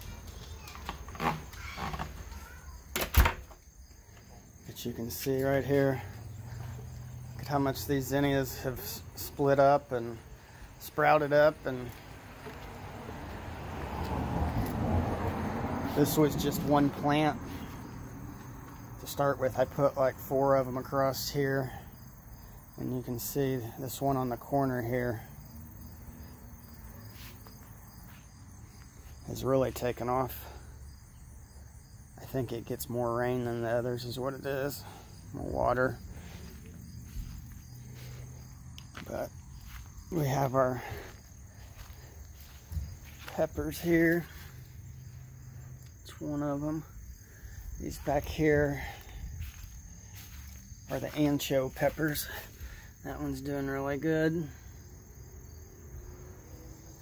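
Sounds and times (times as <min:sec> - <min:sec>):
crickets chirring: 0:00.0 - 0:57.0.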